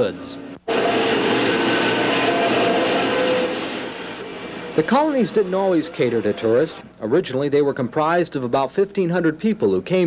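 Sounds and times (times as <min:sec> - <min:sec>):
wood lathe with gouge cutting: 0:00.7 - 0:06.8.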